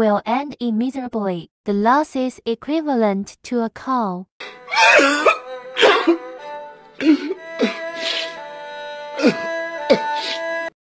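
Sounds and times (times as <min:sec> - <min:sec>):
music with long held notes: 0:04.4 - 0:10.8
man sobbing and wailing: 0:04.5 - 0:06.3, 0:07.0 - 0:08.4, 0:09.2 - 0:10.5.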